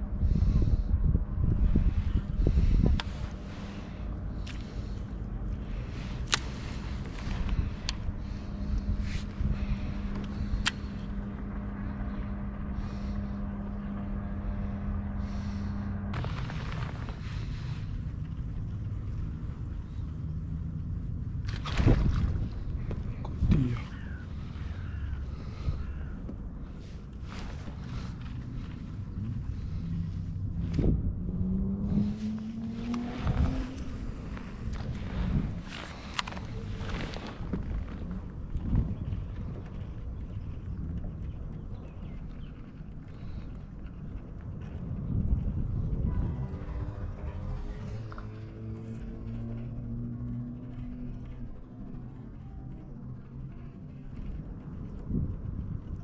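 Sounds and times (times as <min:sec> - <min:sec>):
steady low rumble: 0:00.0 - 0:56.0.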